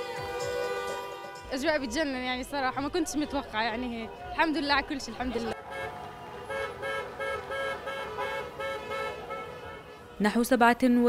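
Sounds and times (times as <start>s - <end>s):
car horn short beeps: 5.6s - 10.0s.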